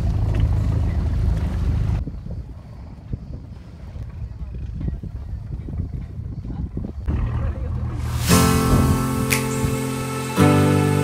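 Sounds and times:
boat engine hum: 0.0s - 2.6s, 6.9s - 11.0s
wind buffeting microphone: 0.0s - 10.4s.

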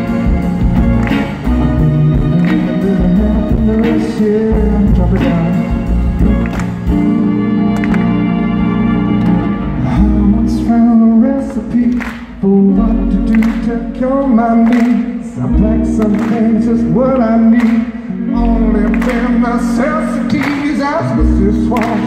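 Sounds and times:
archtop guitar: 0.0s - 22.0s
double bass: 0.0s - 22.0s
person singing: 1.4s - 22.0s.

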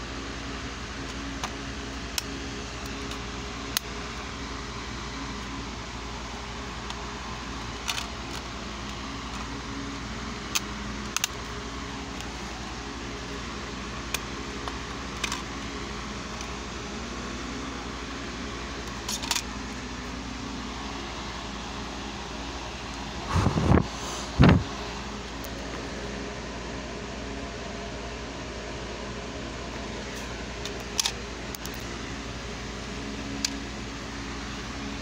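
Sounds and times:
fan hum: 0.0s - 35.0s.

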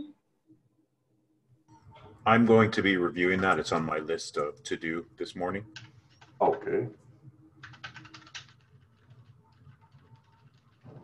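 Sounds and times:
typing on keyboard: 5.7s - 6.4s, 7.6s - 11.0s.

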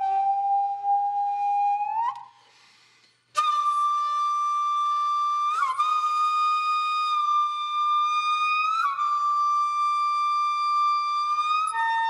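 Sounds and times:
bamboo flute long note: 0.0s - 2.4s, 3.4s - 12.0s.

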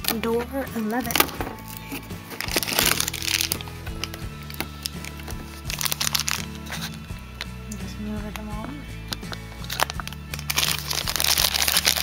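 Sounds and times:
cardboard crinkling and cracking: 0.0s - 7.0s, 9.2s - 12.0s
background music: 0.0s - 12.0s.

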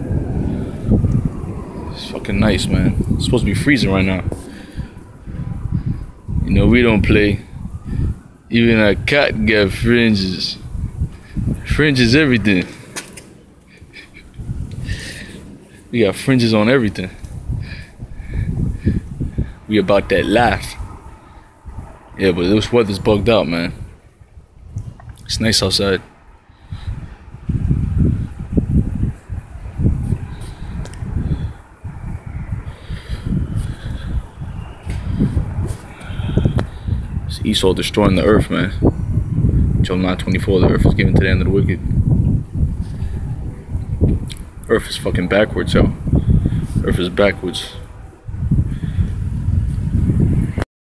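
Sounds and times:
wind buffeting microphone: 0.0s - 50.7s.

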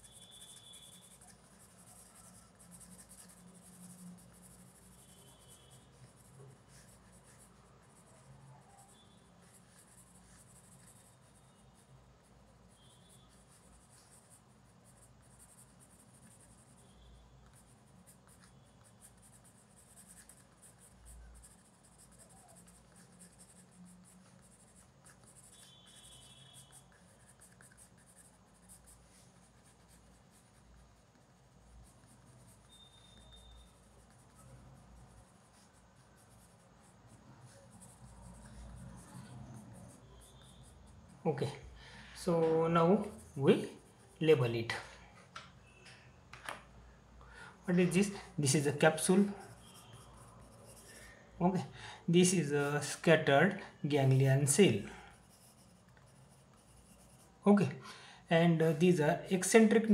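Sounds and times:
pencil scratching on paper: 0.0s - 44.6s, 47.6s - 57.6s.

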